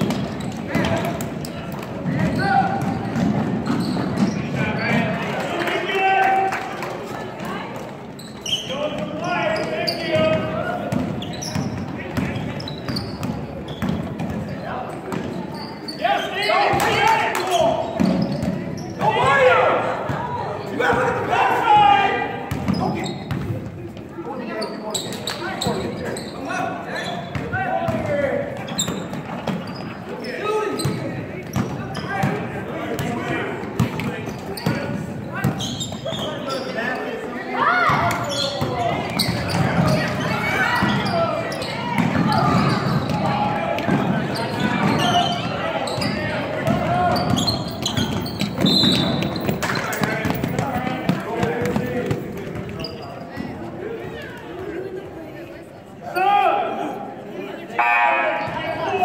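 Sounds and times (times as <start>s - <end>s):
echoing voices calling and talking: 0.0s - 59.0s.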